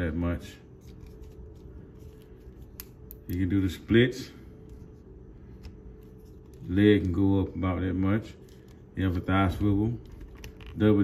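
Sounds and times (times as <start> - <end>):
plastic figure handling: 0.7 - 3.3, 10.0 - 11.0.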